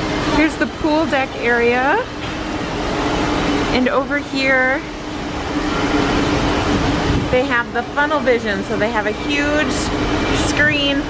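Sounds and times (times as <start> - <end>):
ventilation machinery hum: 0.0 - 11.0.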